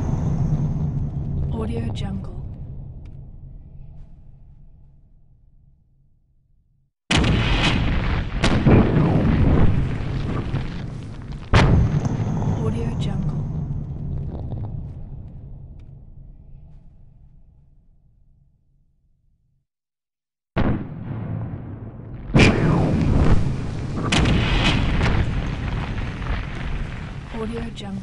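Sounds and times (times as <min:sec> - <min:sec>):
explosion blast rumbling: 0:00.0 - 0:03.5, 0:07.1 - 0:16.3, 0:20.6 - 0:28.0.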